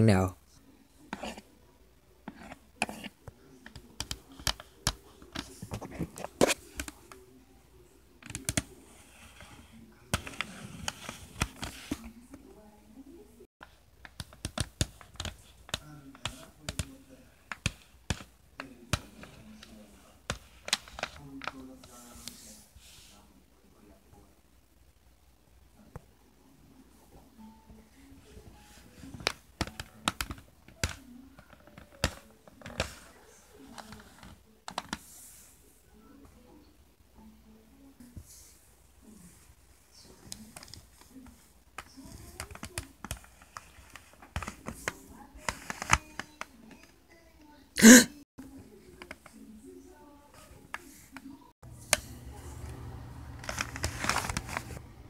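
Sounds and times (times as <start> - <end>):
pen tapping and scraping plastic: 1.1 - 1.4, 2.3 - 7.2, 8.2 - 12.4, 13.6 - 22.0, 29.0 - 35.1, 40.3 - 46.9, 53.4 - 54.8
pen tapping on plastic screen: 2.3 - 7.1, 14.0 - 19.2, 41.8 - 46.5.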